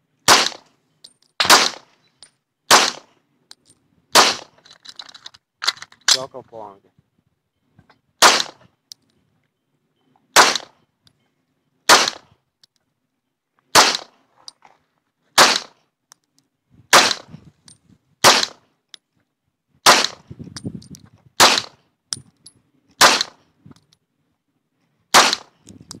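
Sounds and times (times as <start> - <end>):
pistol shots: 0.3 - 0.6, 1.4 - 1.9, 2.7 - 3.1, 4.2 - 4.5, 8.2 - 8.6, 10.4 - 10.8, 11.9 - 12.3, 13.7 - 14.2, 15.4 - 15.8, 16.9 - 17.3, 18.2 - 18.6, 19.8 - 20.2, 21.4 - 21.8, 23.0 - 23.4, 25.1 - 25.6.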